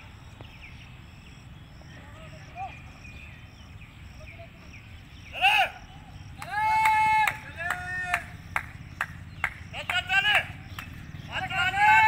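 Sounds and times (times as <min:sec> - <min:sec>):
people shouting encouragement: 0:04.2 - 0:08.4, 0:09.7 - 0:12.0.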